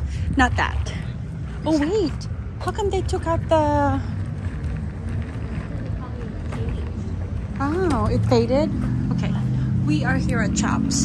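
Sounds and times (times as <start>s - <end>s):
distant traffic: 0.0s - 11.0s
wind rumble: 0.0s - 11.0s.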